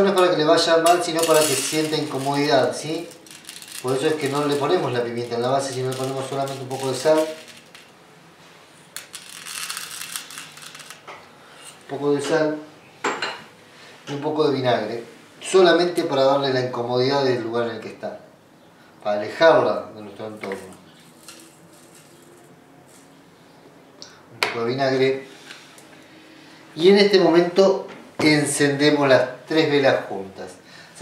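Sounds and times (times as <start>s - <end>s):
glass jar handling noises: 0.8s - 7.9s
salt pattering onto metal tin: 0.8s - 7.9s, 9.0s - 11.0s.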